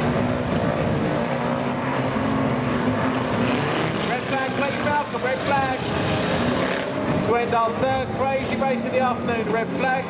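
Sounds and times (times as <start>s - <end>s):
car engines revving: 0.0s - 10.0s.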